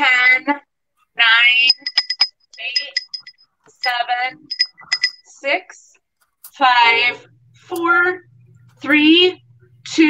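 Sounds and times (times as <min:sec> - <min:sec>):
pottery bell clinking: 0:01.5 - 0:05.3.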